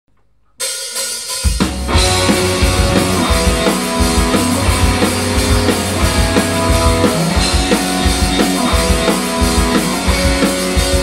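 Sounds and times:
hard rock band: 1.3s - 11.0s
bass drum and bass guitar hits: 1.7s - 9.1s
cymbals ringing: 1.9s - 8.7s.

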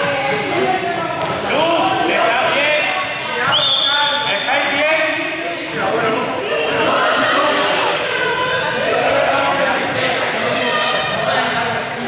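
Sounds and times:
voices in reverberant hall: 0.0s - 12.0s.

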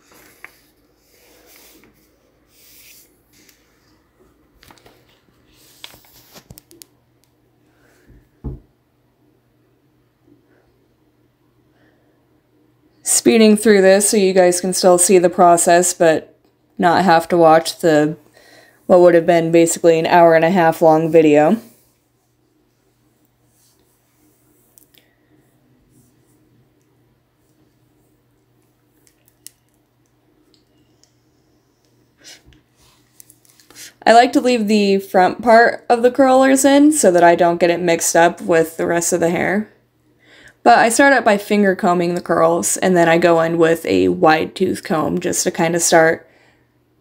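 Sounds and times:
rustling of hair and pillow rollers: 0.0s - 7.0s
steady low hum: 0.0s - 44.4s.

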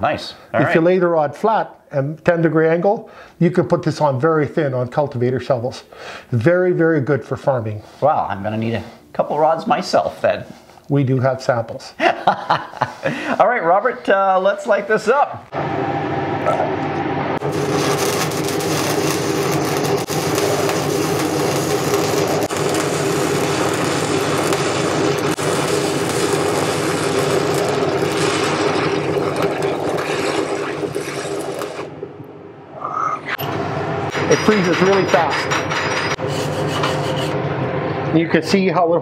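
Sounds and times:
welding arc crackling: 17.4s - 32.3s.

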